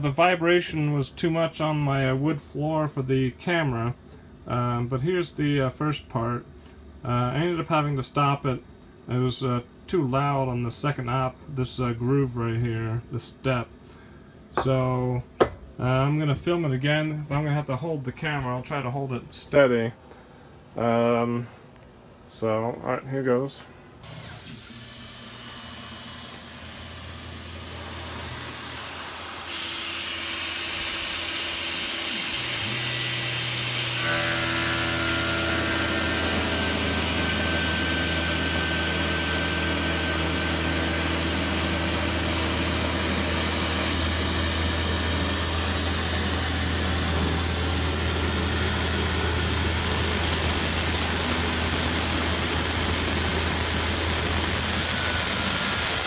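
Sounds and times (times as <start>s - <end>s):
milling machine cutting steel: 24.1s - 56.0s.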